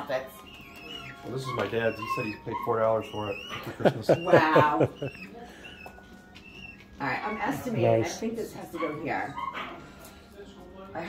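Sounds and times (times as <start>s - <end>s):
chickens chirping: 0.0s - 8.0s.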